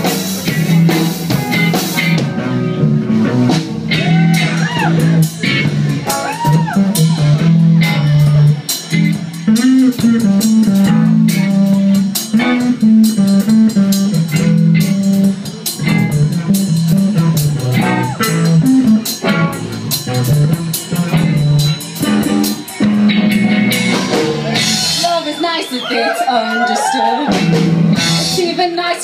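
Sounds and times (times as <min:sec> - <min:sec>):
electric bass line: 0:00.0 - 0:25.2, 0:27.3 - 0:28.4
live rock band playing: 0:00.0 - 0:29.0.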